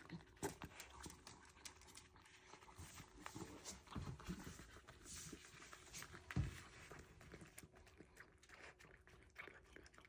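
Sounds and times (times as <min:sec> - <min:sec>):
dog licking ice cream: 0:00.0 - 0:10.0.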